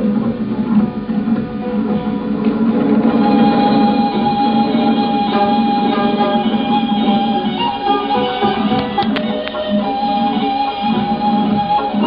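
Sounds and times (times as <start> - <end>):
plucked lute melody: 0.0 - 12.0.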